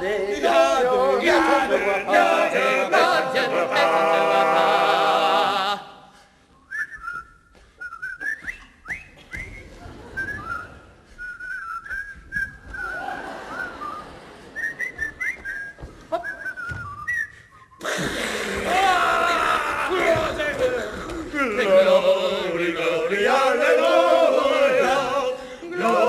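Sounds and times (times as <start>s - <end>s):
whistling chirps and trills: 6.6s - 17.8s.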